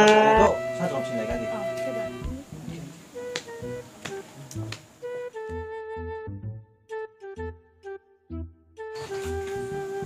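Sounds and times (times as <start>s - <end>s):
background music: 0.0s - 10.0s
sharp snap-like clicks: 3.3s - 4.9s.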